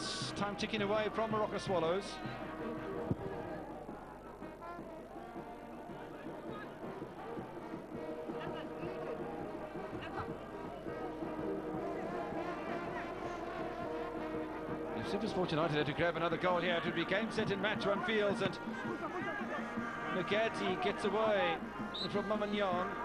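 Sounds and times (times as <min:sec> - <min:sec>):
stadium crowd noise: 0:00.0 - 0:23.0.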